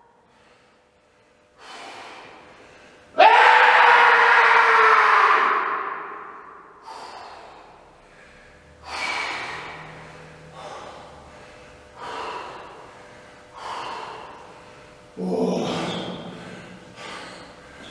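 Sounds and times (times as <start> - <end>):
man gasping for breath: 6.8 - 14.9, 15.5 - 17.9
man groaning with strain: 15.2 - 16.4.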